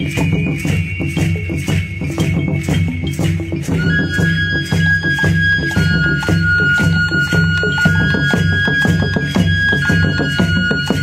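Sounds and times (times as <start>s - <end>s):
hand drum beat: 0.0s - 11.0s
high flute note: 0.0s - 11.0s
rattling percussion: 0.0s - 11.0s.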